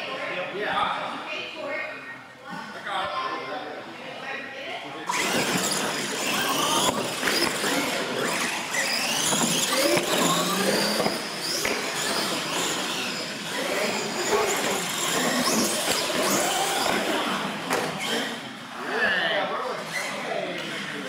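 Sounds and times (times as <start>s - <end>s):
toy truck motors whining: 5.1s - 21.0s.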